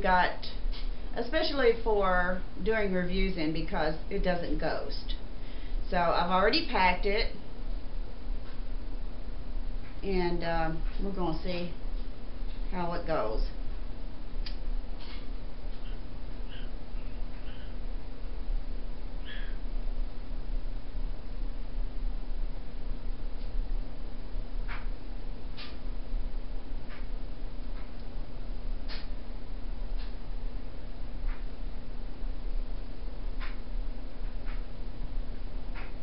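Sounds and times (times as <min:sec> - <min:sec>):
room fan humming: 0:00.0 - 0:36.0.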